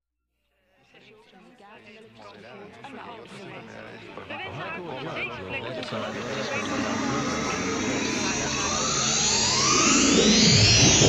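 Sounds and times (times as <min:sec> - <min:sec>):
synthesizer riser sweeps: 0:05.9 - 0:11.0.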